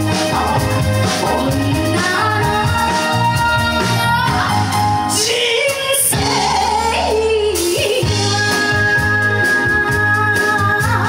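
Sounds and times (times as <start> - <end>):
band with bass drums keyboards: 0.0 - 11.0.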